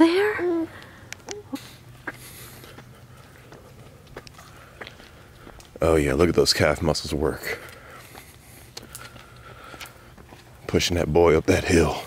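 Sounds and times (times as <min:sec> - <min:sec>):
footsteps on paved road: 0:00.0 - 0:12.0
low steady rumble: 0:00.0 - 0:12.0.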